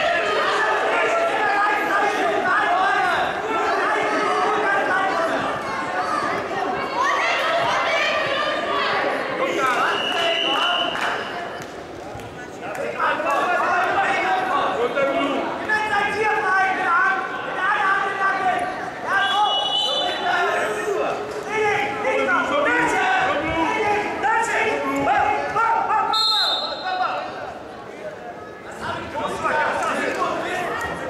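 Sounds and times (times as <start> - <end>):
faint echoing voices: 0.0 - 31.0
referee's whistle blast: 19.2 - 20.2, 26.1 - 26.9.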